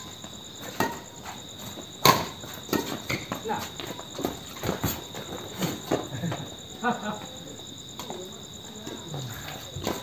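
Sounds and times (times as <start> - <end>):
crickets chirring: 0.0 - 10.0
racket hitting shuttlecock: 2.0 - 3.4.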